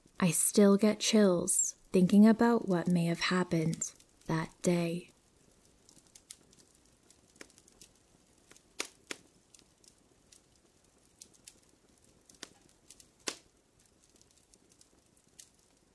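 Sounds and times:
campfire crackling: 3.4 - 15.9.

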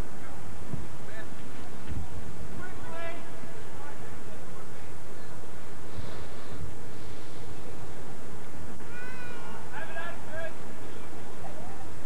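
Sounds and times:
outdoor noise: 0.0 - 12.0
distant high-pitched shouts: 8.8 - 10.7.

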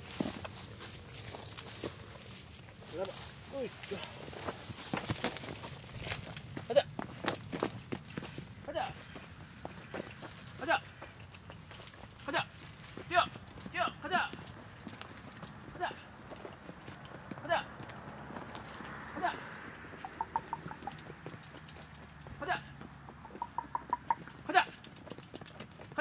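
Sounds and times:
man's sharp wordless calls: 15.7 - 16.2, 17.4 - 17.8, 19.0 - 21.0, 22.3 - 24.9.

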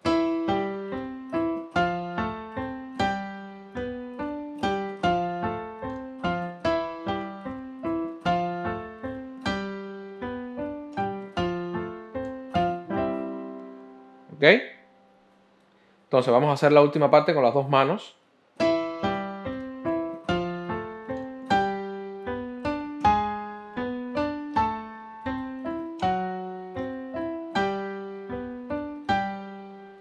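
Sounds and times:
piano playing syncopated chords: 0.0 - 15.4, 18.6 - 30.0.

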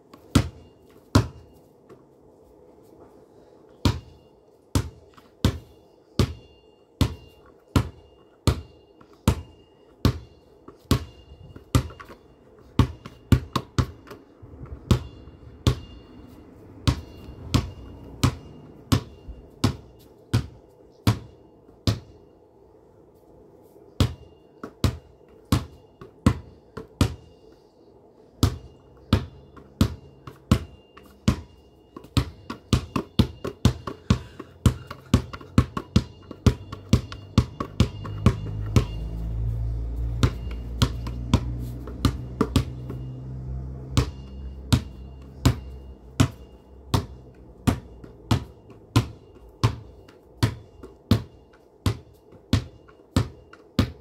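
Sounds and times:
low steady hum: 0.0 - 54.0
basketball bouncing: 14.8 - 15.9, 16.8 - 22.1, 28.4 - 39.0, 40.2 - 43.1, 44.0 - 54.0.

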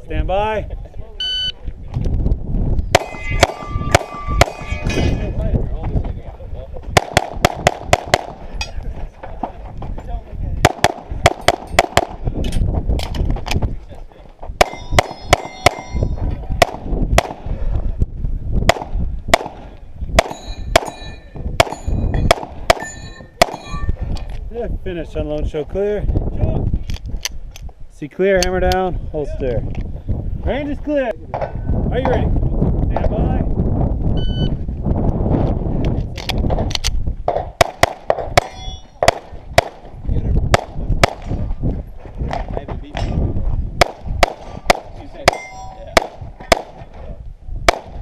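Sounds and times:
shot timer beep: 1.2 - 1.6
pistol shots: 3.0 - 4.7, 7.0 - 8.4, 10.6 - 12.2, 14.6 - 15.9, 16.6 - 17.5, 18.7 - 19.6, 20.2 - 21.0, 21.6 - 23.6, 37.3 - 39.9, 40.5 - 41.3, 43.8 - 46.8, 47.7 - 48.0
steel targets clanging: 3.0 - 5.4, 14.6 - 16.2, 20.3 - 24.0, 38.4 - 39.0, 45.3 - 45.8.

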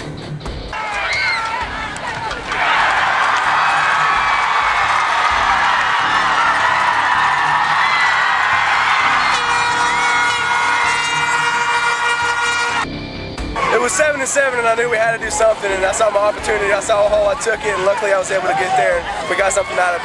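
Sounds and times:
crowd cheering: 0.7 - 12.9, 13.6 - 20.0
steady horn note: 9.0 - 12.9.

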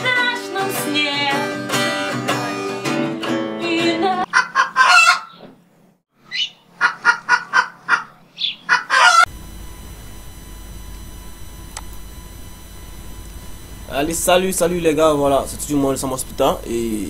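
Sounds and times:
acoustic guitar music: 0.0 - 4.3
low hum and hiss: 9.3 - 17.0.

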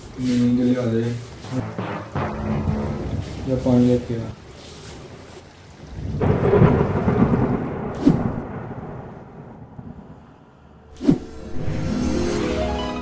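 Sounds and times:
sharp thunder crack: 1.6 - 3.8, 6.2 - 10.1
thunder rumble: 1.6 - 4.1, 5.8 - 11.5.

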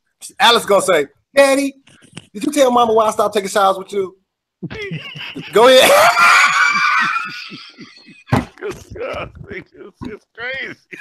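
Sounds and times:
man shrieking with laughter: 4.8 - 9.2.

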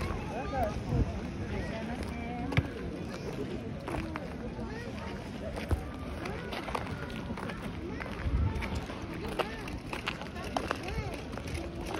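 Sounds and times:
people talking: 0.0 - 11.9.

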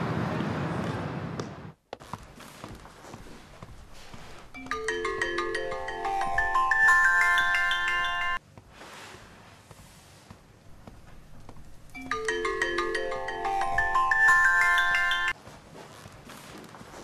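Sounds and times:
phone ringtone marimba melody: 4.6 - 8.4, 12.0 - 15.4.

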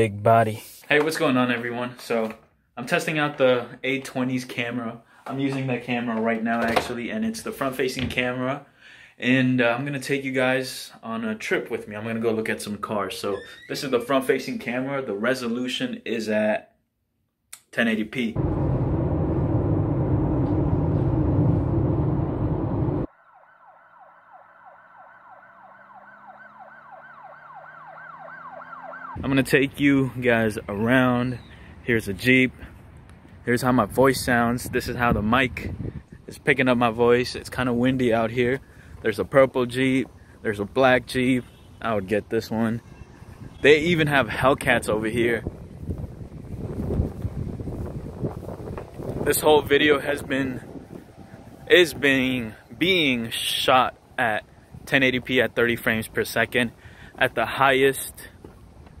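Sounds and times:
road and wind noise inside a car: 18.4 - 23.1
siren-like wail: 18.4 - 29.2
wind buffeting microphone: 32.1 - 36.6, 42.8 - 53.0.

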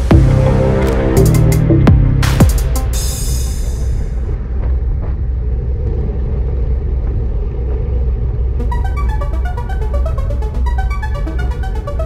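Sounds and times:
electronic music: 0.0 - 4.3, 8.6 - 12.0
wind rumble: 0.0 - 12.0
road noise from bike: 3.6 - 8.6.

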